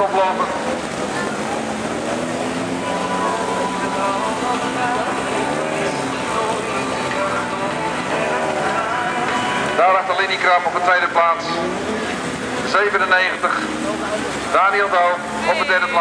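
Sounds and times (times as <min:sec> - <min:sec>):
race car engines revving: 0:00.0 - 0:16.0.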